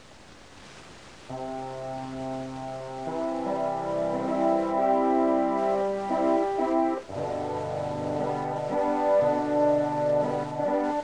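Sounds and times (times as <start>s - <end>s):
faint hiss: 0.0s - 11.0s
electronic keyboard chord: 1.3s - 11.0s.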